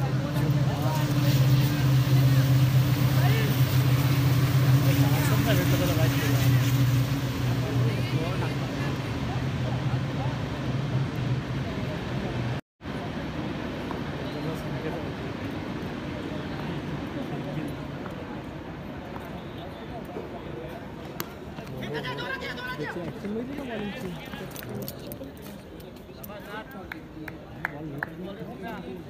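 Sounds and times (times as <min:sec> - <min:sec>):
low engine drone: 0:00.0 - 0:13.8
distant shouts and chatter: 0:00.0 - 0:29.0.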